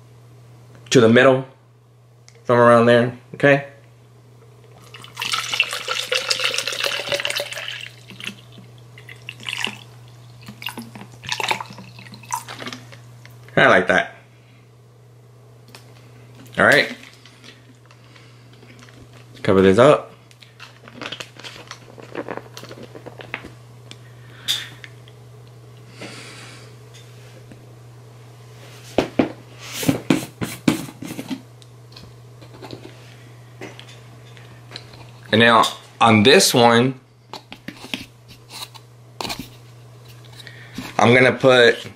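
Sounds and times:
steady low hum: 0.0s - 41.9s
water pouring into plastic cup: 4.8s - 12.8s
water glugs and splashes: 4.9s - 12.8s.

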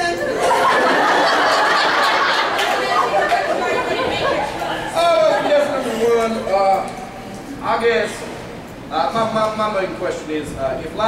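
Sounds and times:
overlapping voices in a crowded room: 0.0s - 7.6s.

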